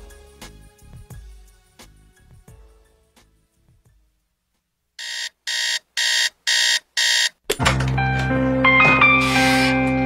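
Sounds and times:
electronic alarm beeps: 0:05.0 - 0:07.3.

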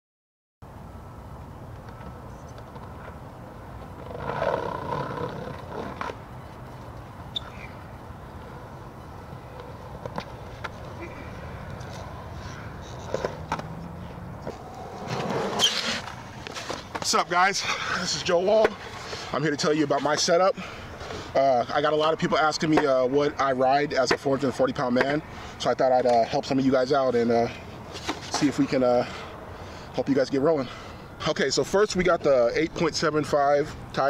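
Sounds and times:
skateboard wheels rolling on concrete: 0:01.0 - 0:34.0.

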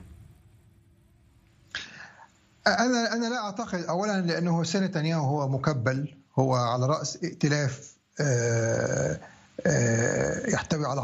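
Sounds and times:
man speaking: 0:02.6 - 0:11.0.

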